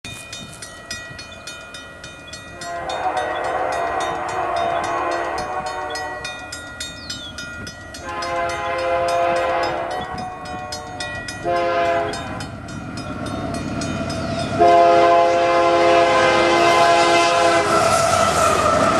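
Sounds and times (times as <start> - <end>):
level-crossing bell ringing: 0.1 - 15.0
locomotive air horn blasts: 2.5 - 6.3, 8.0 - 12.5, 14.6 - 18.8.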